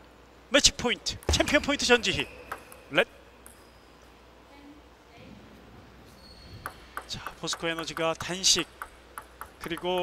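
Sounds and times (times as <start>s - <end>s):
table tennis ball clicks: 2.4s - 3.7s, 6.6s - 10.0s.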